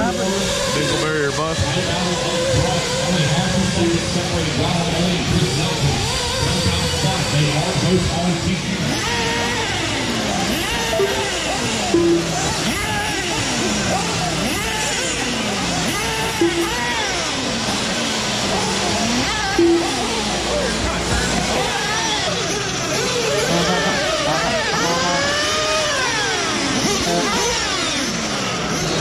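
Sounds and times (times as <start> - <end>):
rc buggy engines revving: 0.0 - 29.0
short beeps: 10.9 - 12.4, 16.4 - 16.8, 19.6 - 20.1.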